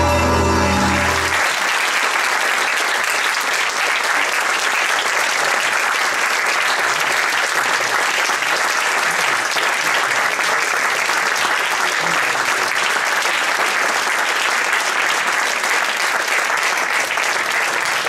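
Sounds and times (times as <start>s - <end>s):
audience applauding: 0.8s - 18.0s.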